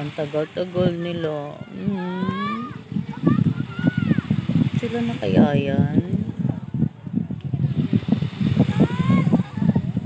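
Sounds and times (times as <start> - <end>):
water lapping: 0.0 - 10.0
wind on microphone: 0.0 - 10.0.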